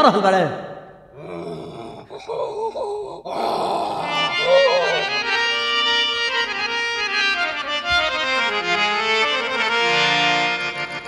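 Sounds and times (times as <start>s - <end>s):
person singing wordless vocals: 1.2s - 5.5s
quiet accompaniment: 3.9s - 11.0s
harmonium: 4.1s - 11.0s.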